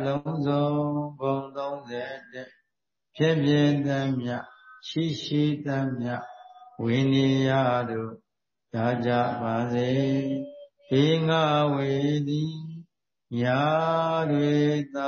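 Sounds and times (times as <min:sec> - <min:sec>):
man chanting: 0:00.0 - 0:02.5, 0:03.2 - 0:15.0.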